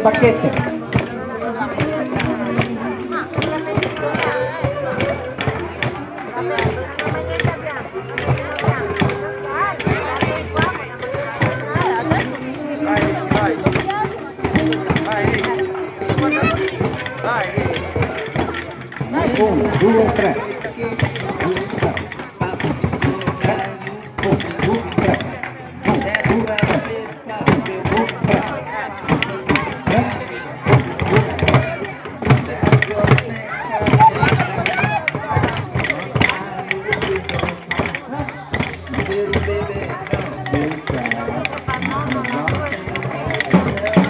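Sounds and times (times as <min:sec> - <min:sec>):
crowd chatter: 0:00.0 - 0:44.0
drumsticks clicking: 0:32.2 - 0:44.0.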